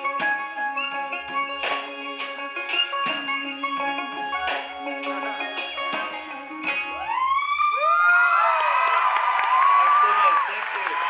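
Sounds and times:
acoustic guitar strumming: 0.0s - 7.0s
audience cheering and whooping: 6.9s - 11.0s.

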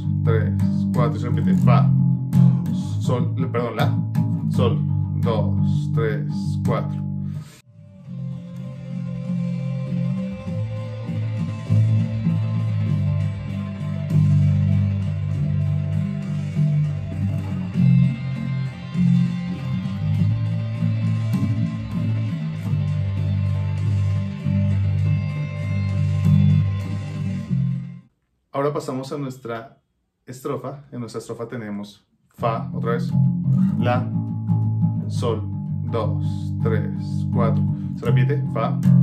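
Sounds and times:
electric bass riff: 0.0s - 28.1s, 32.4s - 39.0s.

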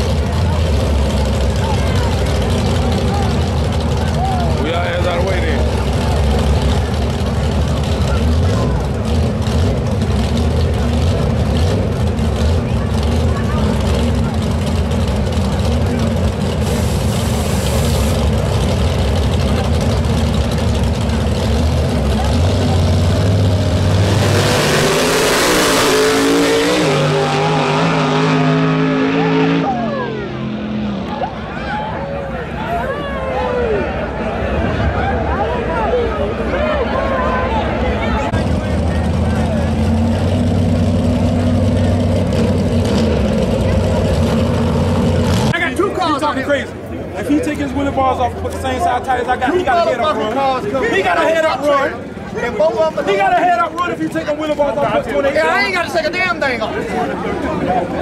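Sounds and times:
race cars idling rumble: 0.0s - 24.9s, 29.6s - 58.0s
crowd voices: 0.0s - 58.0s
race cars launching full throttle: 0.0s - 58.0s.

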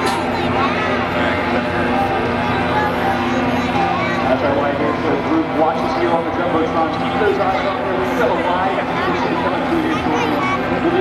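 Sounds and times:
people talking indistinctly: 0.0s - 11.0s
steady low hum: 0.0s - 11.0s.

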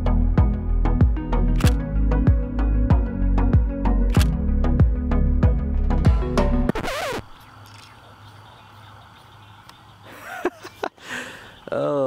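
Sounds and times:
background music: 0.0s - 6.9s.

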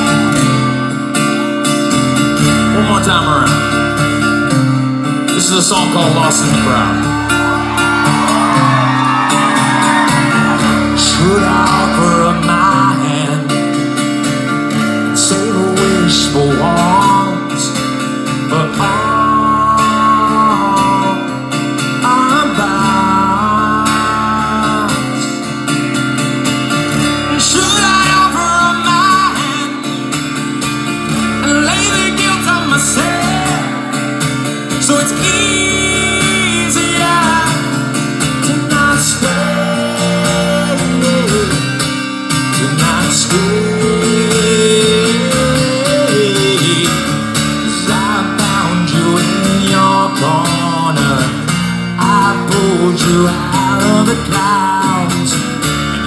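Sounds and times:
strummed acoustic guitar: 0.0s - 56.0s
man singing through pa: 9.7s - 13.6s, 15.1s - 17.8s, 18.4s - 21.3s, 22.0s - 25.3s, 27.3s - 29.8s, 31.4s - 33.9s, 34.8s - 37.7s, 38.5s - 41.7s, 42.5s - 55.4s.

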